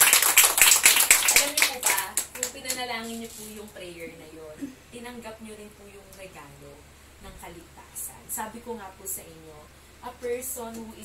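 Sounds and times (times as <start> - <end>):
people clapping: 0.0 - 2.9.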